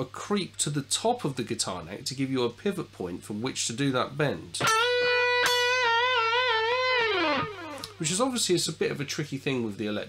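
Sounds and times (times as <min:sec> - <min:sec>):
electric guitar bent note with vibrato: 0:04.6 - 0:08.0.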